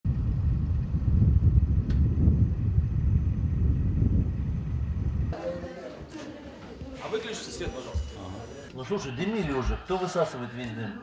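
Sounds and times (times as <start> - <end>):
low outdoor rumble: 0.0 - 5.7.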